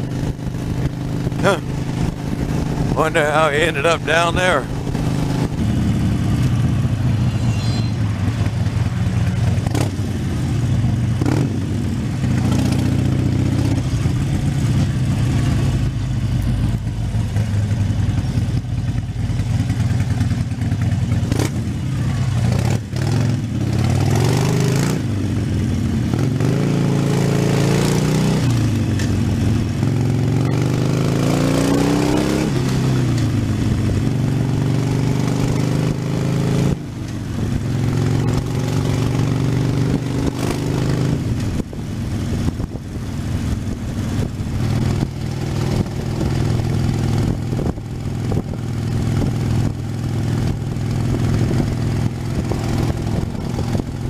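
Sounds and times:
motorcycle engine running: 0:00.0 - 0:54.0.

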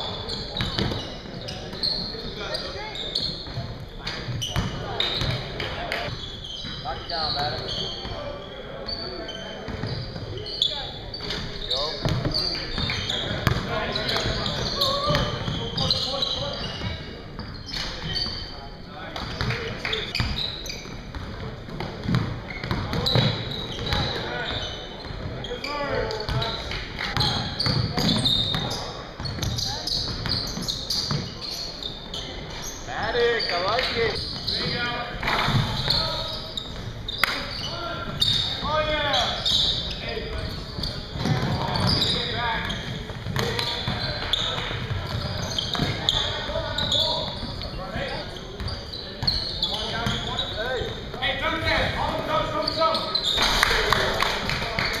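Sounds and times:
short high shoe squeaks: 0:00.0 - 0:03.6, 0:06.0 - 0:18.6, 0:22.5 - 0:51.1, 0:52.3 - 0:53.6
voices in background: 0:00.0 - 0:55.0
basketball bouncing on a court: 0:00.5 - 0:01.8, 0:04.3 - 0:05.5, 0:12.0 - 0:15.6, 0:20.2 - 0:24.1, 0:27.2 - 0:31.2, 0:40.4 - 0:46.2.

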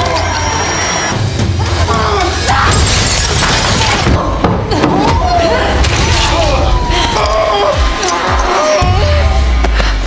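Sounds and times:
glass shattering: 0:02.5 - 0:04.2.

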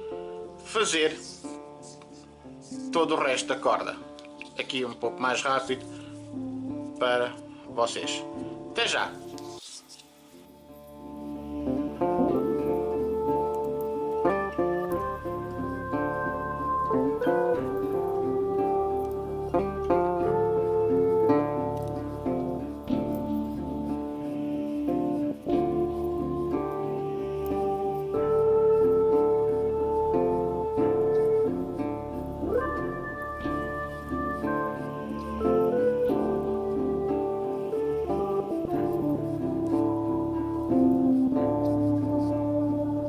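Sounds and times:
instrumental background music: 0:00.0 - 0:43.0.

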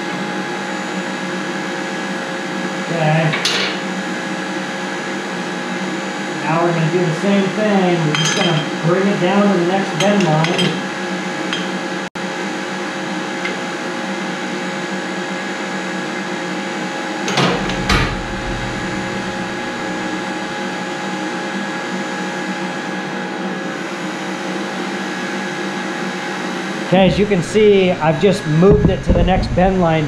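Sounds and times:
metal clunks: 0:17.3 - 0:20.6
electric motor hum: 0:17.3 - 0:21.4, 0:26.9 - 0:30.0.

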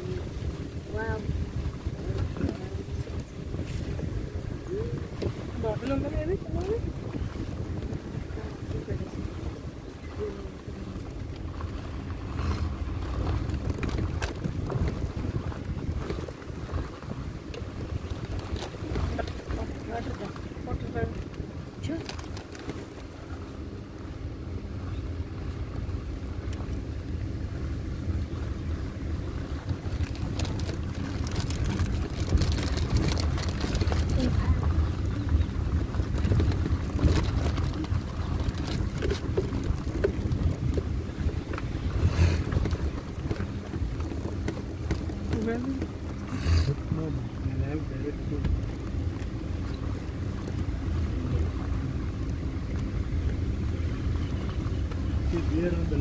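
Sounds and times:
vehicle engine rumble: 0:00.0 - 0:56.0
wind buffeting microphone: 0:00.0 - 0:56.0
vehicle knocks and rattles: 0:29.6 - 0:46.3.

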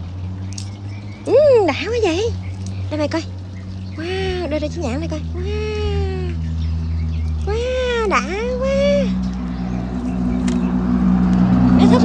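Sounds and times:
motor droning: 0:00.0 - 0:12.0
voices: 0:00.0 - 0:12.0.

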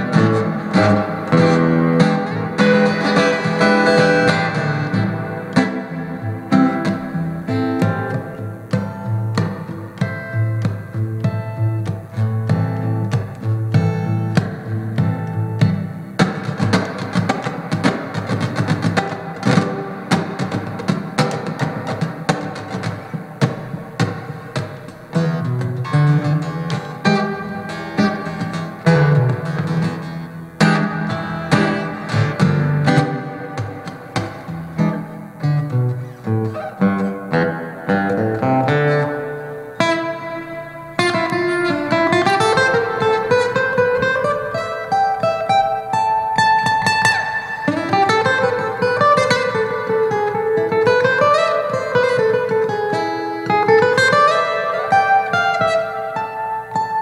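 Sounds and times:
taps on guitar body: 0:00.0 - 0:40.4
acoustic guitar picking: 0:00.0 - 0:57.0.

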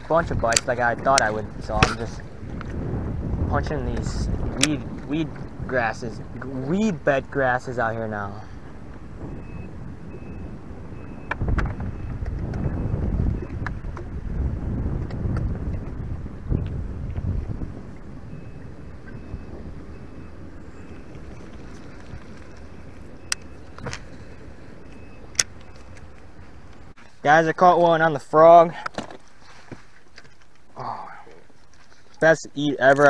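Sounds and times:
wind buffeting microphone: 0:00.0 - 0:28.7.

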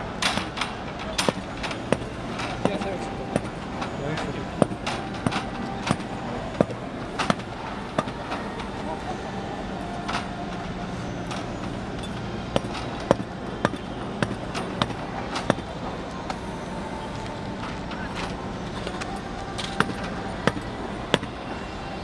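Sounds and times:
distant voices: 0:00.0 - 0:22.0
steady stadium hum: 0:00.0 - 0:22.0.

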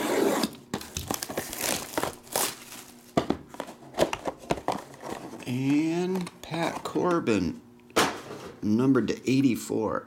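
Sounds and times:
plastic wrap ripping: 0:00.8 - 0:03.2
crinkling plastic: 0:00.8 - 0:03.6.

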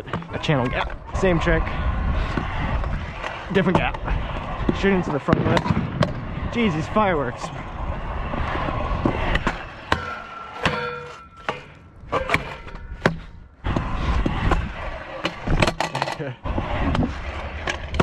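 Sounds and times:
scooter wheels rolling on concrete: 0:00.0 - 0:18.0.

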